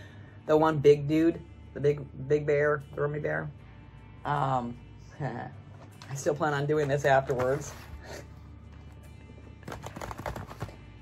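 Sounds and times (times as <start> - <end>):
quiet background music: 0.0 - 11.0
cardboard box clicks and taps: 9.6 - 10.8.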